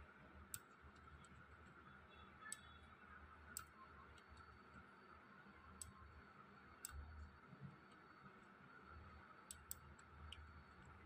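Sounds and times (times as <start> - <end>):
computer mouse clicks: 0.5 - 2.8, 3.5 - 4.9, 5.7 - 6.1, 6.7 - 11.0.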